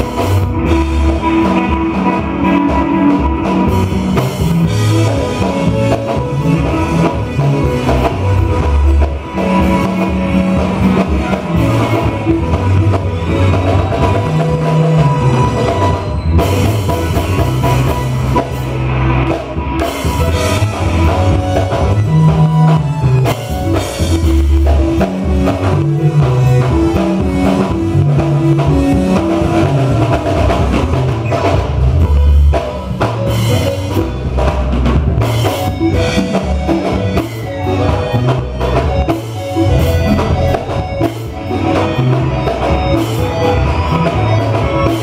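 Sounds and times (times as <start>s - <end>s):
drums: 0.0s - 45.0s
gospel band playing: 0.0s - 45.0s
heavy bass line: 0.0s - 45.0s.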